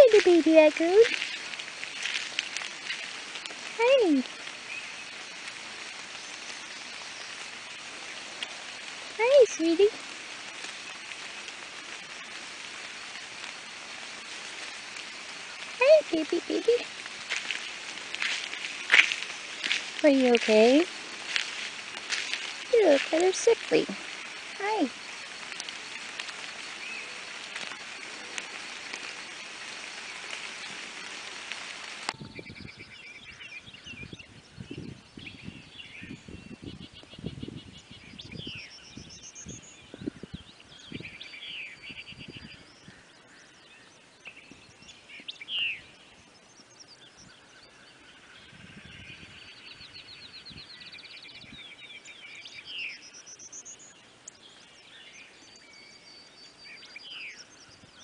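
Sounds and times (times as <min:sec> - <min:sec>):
steady hiss: 0:00.0 - 0:32.2
songbirds singing: 0:00.0 - 0:58.0.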